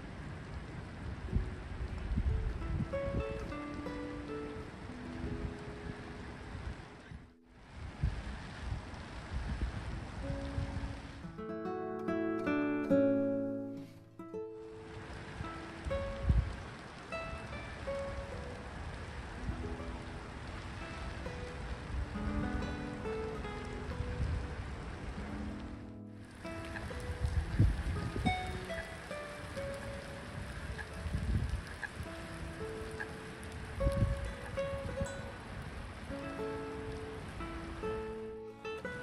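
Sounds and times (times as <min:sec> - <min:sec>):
rain falling on lake water: 0:00.0 - 0:39.0
plucked guitar music: 0:01.2 - 0:07.6, 0:10.2 - 0:39.0.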